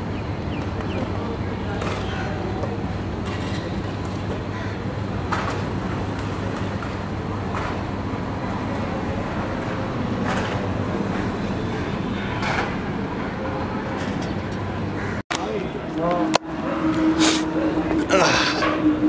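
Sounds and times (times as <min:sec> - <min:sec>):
traffic engines rumbling: 0:00.0 - 0:19.0.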